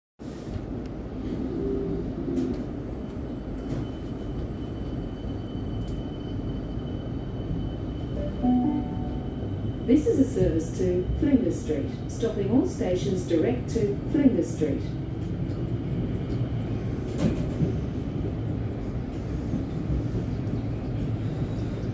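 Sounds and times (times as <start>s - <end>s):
electric train rumbling: 0.2s - 21.9s
faint high whine: 7.5s - 9.9s.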